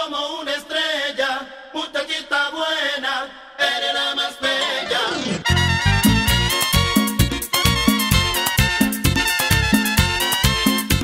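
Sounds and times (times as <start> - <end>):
man singing a cappella: 0.0 - 5.1.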